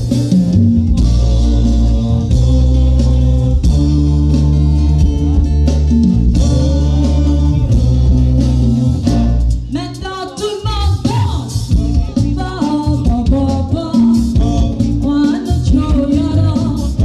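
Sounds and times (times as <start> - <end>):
afro-pop band playing: 0.0 - 17.0
woman singing: 9.7 - 17.0.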